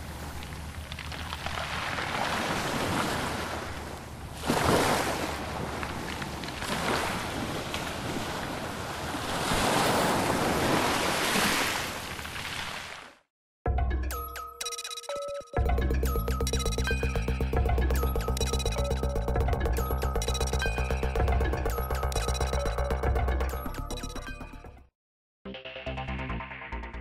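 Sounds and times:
ocean waves breaking on beach: 0:00.0 - 0:13.1.

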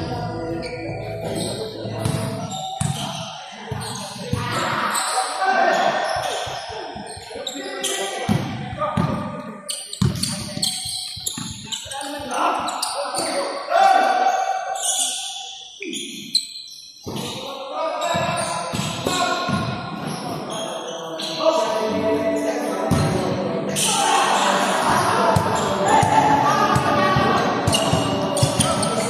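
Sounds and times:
players calling out: 0:18.0 - 0:29.0.

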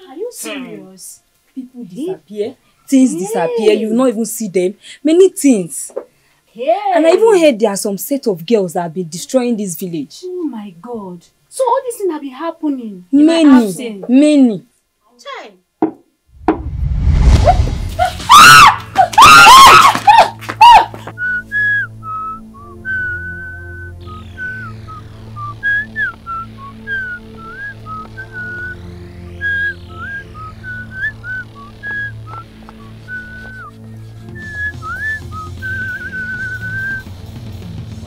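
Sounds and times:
steady low drone: 0:16.4 - 0:18.3
loud wavering pitched cry: 0:17.3 - 0:20.9
whistle-like melody: 0:21.2 - 0:37.1.

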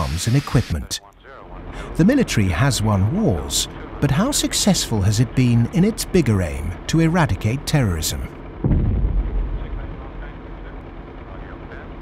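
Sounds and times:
steady hazy noise: 0:00.0 - 0:08.5
explosion rumble: 0:08.6 - 0:10.3.

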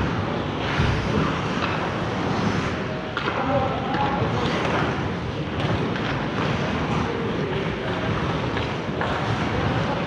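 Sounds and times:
faint clacks of sticks and puck: 0:00.0 - 0:10.0
ice rink rumbling: 0:00.0 - 0:10.0.

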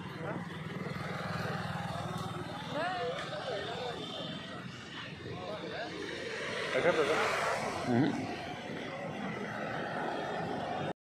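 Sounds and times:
motorcycle engine idling: 0:00.0 - 0:04.3
men talking: 0:03.5 - 0:09.2.

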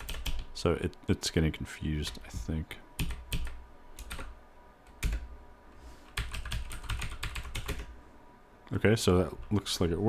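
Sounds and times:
typing on computer keyboard: 0:00.0 - 0:00.4, 0:03.0 - 0:04.3, 0:05.0 - 0:05.3, 0:06.1 - 0:07.9.

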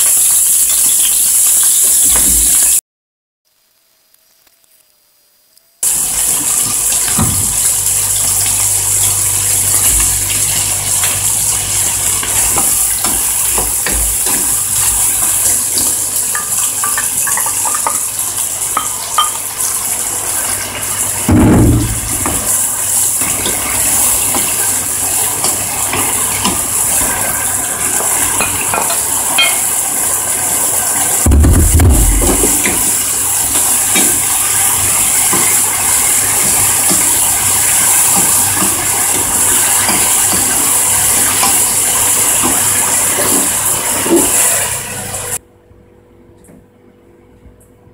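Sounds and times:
food sizzling in a frying pan: 0:00.0 - 0:02.8, 0:03.6 - 0:45.4.

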